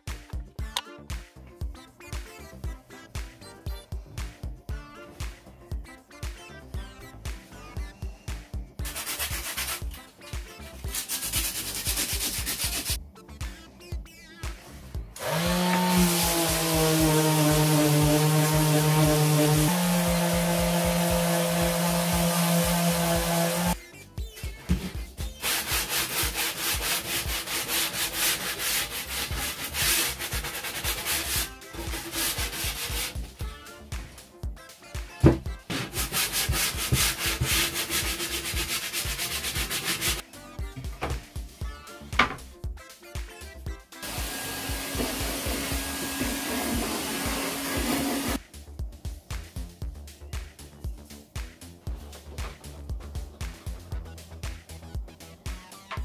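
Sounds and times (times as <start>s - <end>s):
hand sanding wood: 8.8s - 10.0s, 10.8s - 13.0s, 15.2s - 23.8s, 24.7s - 33.4s, 35.2s - 40.2s, 44.0s - 48.4s
electric sander running: 15.2s - 23.8s, 44.0s - 48.4s.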